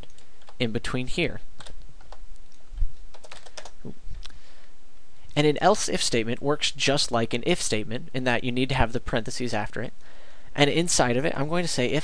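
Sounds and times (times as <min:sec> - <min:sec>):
keyboard typing: 0:01.6 - 0:02.2, 0:03.1 - 0:03.9.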